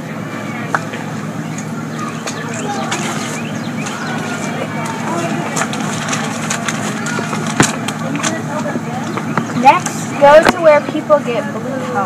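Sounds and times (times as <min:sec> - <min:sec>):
steady low hum: 0:00.0 - 0:12.0
paper crinkling: 0:02.9 - 0:08.4.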